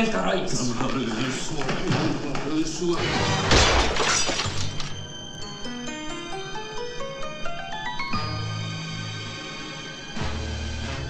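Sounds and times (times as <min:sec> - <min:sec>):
door smashed with glass shattering: 0:03.0 - 0:05.0
music with rising notes: 0:04.6 - 0:11.0.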